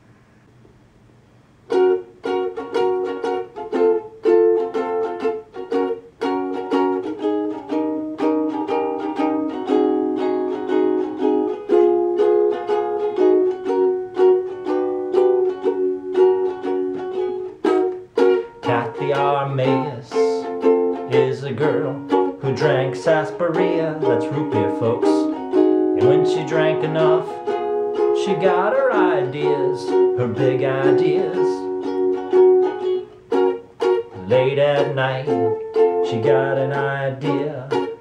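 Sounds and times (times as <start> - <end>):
ukulele strumming chords: 1.6 - 38.0.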